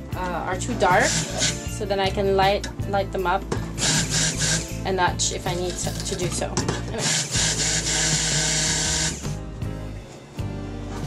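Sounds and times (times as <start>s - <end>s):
stick blender running: 0.9s - 1.7s, 3.7s - 4.8s, 6.9s - 9.4s.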